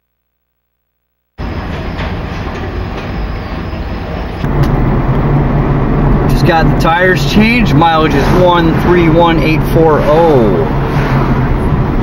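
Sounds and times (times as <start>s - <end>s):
car road and engine noise: 1.4s - 12.0s
freight train rumbling and rattling: 1.4s - 12.0s.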